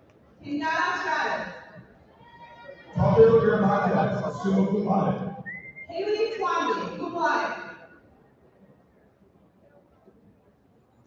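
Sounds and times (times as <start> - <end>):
voices in a hall: 0.0 - 11.0
high whistle from audience: 5.4 - 5.9.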